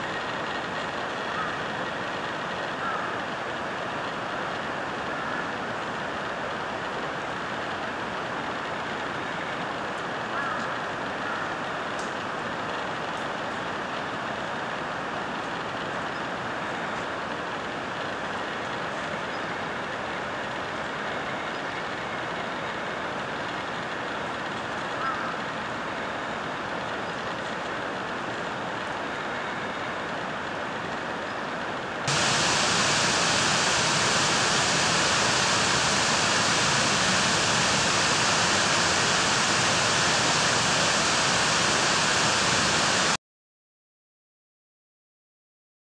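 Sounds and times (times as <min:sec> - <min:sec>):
steady rushing noise: 0:32.1 - 0:43.2.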